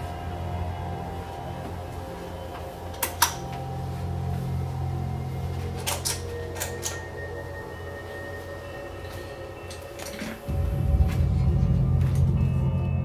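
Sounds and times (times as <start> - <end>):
low steady drone: 0.0 - 13.0.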